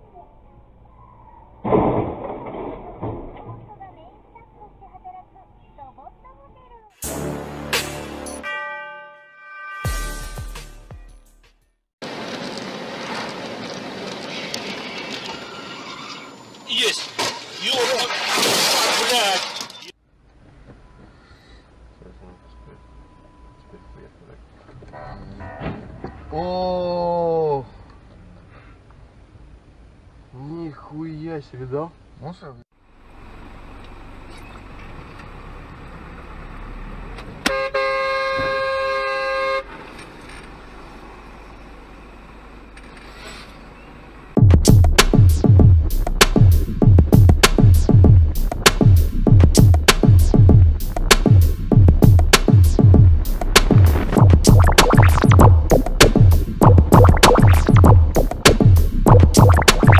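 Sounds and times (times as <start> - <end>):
car horn honking: 8.2 - 10.4, 37.4 - 39.7
road vehicle moving: 12.0 - 16.8, 32.8 - 37.8, 39.5 - 44.4.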